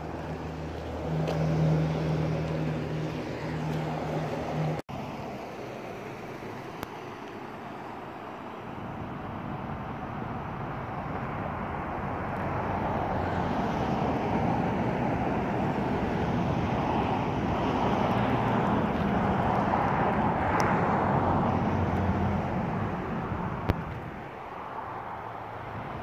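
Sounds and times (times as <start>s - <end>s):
vehicle engine: 0.0s - 26.0s.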